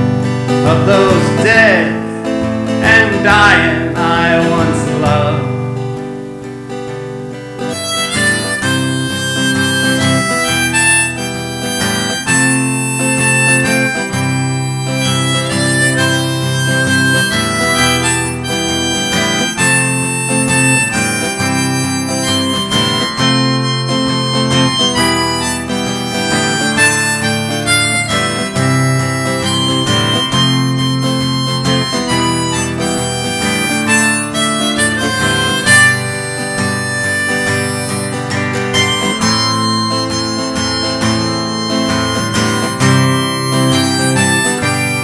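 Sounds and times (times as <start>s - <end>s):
harmonica wailing notes: 0.0s - 5.8s, 6.7s - 45.0s
electric guitar: 0.0s - 45.0s
strummed acoustic guitar: 0.0s - 45.0s.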